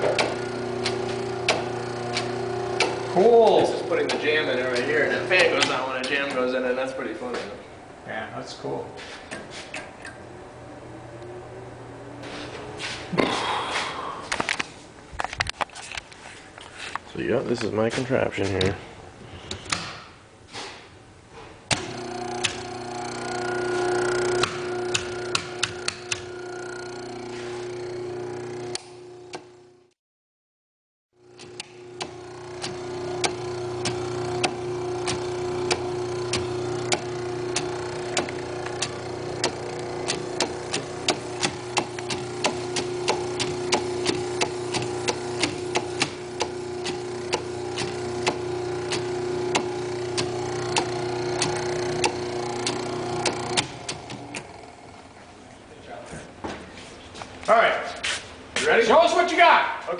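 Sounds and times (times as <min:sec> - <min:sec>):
electric motor humming: 0:00.0 - 0:08.0, 0:09.9 - 0:13.6, 0:21.7 - 0:30.0, 0:31.2 - 0:55.7
fast regular clicking: 0:21.7 - 0:23.4, 0:24.2 - 0:26.8, 0:31.3 - 0:54.6.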